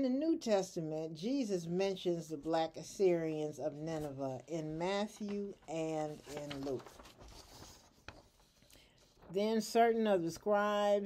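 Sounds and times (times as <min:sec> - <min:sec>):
paper sheet rustling: 0:03.8 - 0:09.8.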